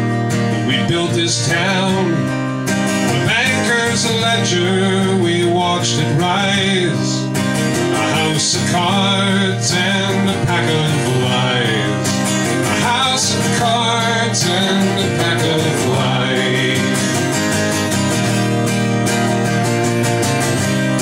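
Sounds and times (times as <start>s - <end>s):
strummed acoustic guitar: 0.0s - 21.0s
man singing: 0.6s - 2.4s, 3.1s - 17.4s.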